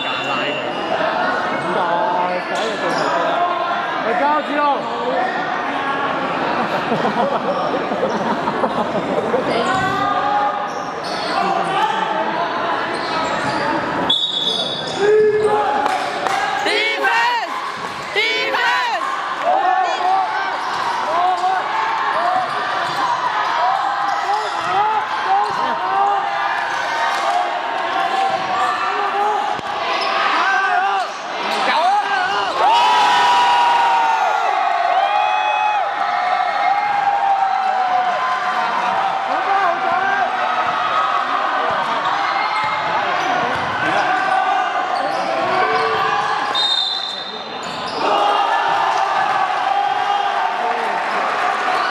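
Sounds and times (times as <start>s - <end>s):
sneakers squeaking on wooden floor: 12.8s - 15.6s, 44.9s - 48.1s.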